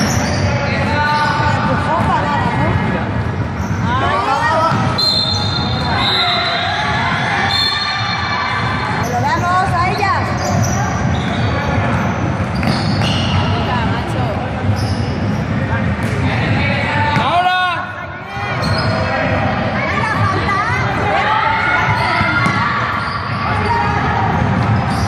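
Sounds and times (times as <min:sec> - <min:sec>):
voices calling out in hall: 0:00.0 - 0:25.0
basketball bouncing on court: 0:01.5 - 0:03.0, 0:08.5 - 0:17.4, 0:21.8 - 0:23.6.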